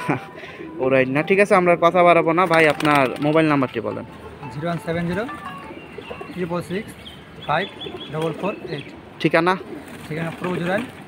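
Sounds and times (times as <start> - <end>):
pigeons cooing: 4.1 - 11.0.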